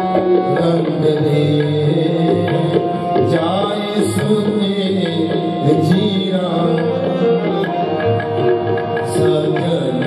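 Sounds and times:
tabla drumming: 0:00.0 - 0:10.0.

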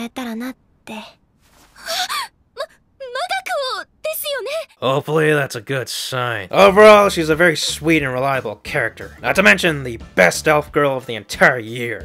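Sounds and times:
young woman gasping: 0:01.7 - 0:02.8.

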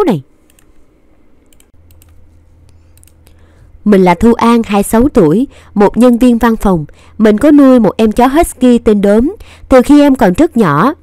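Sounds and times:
quiet low hum: 0:00.1 - 0:11.0.

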